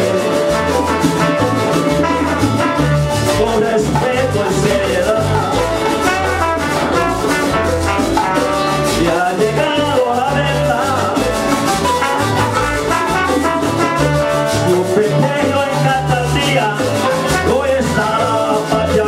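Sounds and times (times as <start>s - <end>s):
bass line: 0.0s - 19.0s
cuatros: 0.0s - 19.0s
hand percussion: 0.0s - 19.0s
live latin band playing: 0.0s - 19.0s
trombone: 0.0s - 19.0s.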